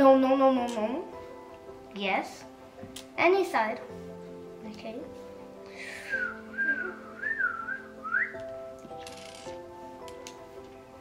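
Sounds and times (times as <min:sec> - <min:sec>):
boy whistling a tune: 0:06.0 - 0:08.4.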